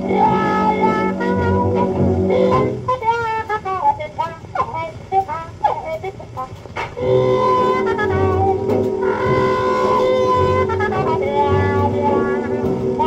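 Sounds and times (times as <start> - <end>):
dance band on old record: 0.0 - 13.0
muted trumpet bending notes: 0.0 - 13.0.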